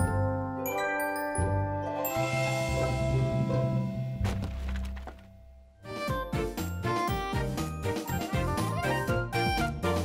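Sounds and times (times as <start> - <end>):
cartoon wooden blocks toppling: 4.2 - 5.4
bouncy tune: 5.8 - 10.0.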